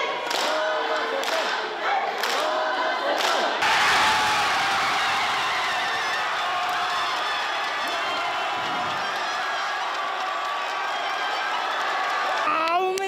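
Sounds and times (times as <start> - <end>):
crowd roaring and cheering: 0.0 - 13.0
crowd shouting encouragement: 1.8 - 13.0.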